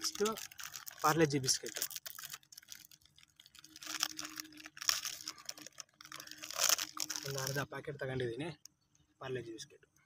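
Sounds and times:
plastic packet crinkling: 0.0 - 7.8.

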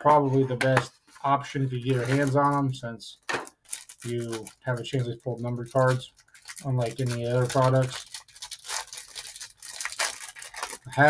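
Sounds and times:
plastic wrapper crinkling and tearing: 1.8 - 2.7, 3.3 - 11.0.

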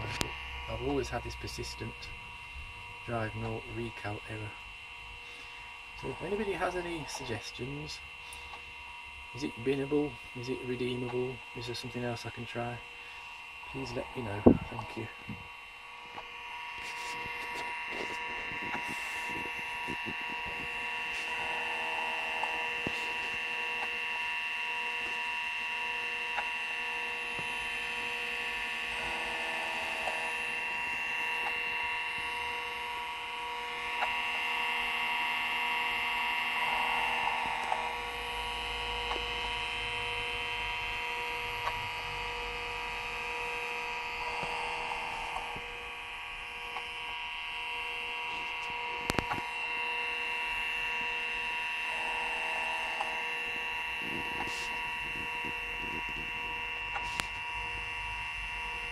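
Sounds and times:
computer hum: 0.0 - 58.9
hard drive high whine: 0.0 - 58.9
hard drive noise burst: 0.0 - 58.9.

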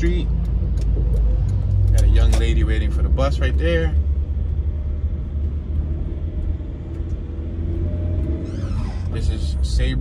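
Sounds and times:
car road rumble: 0.0 - 10.0.

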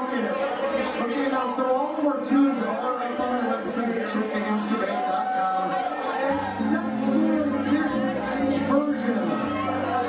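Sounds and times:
man speaking through microphone: 0.0 - 10.0
live band playing: 6.3 - 10.0.

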